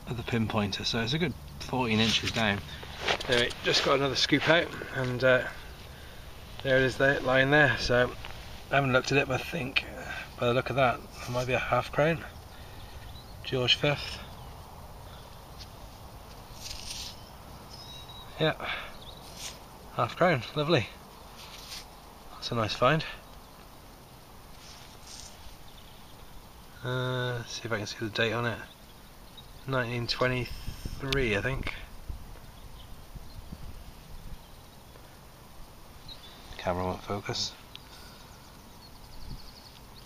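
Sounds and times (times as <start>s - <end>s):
faint high chirp: 16.6s - 19.5s
wind buffeting microphone: 30.1s - 34.6s.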